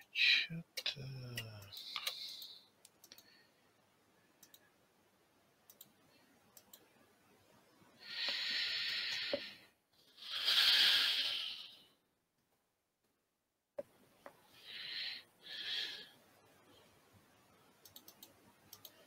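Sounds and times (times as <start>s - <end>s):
mouse clicks: 4.4s - 4.6s.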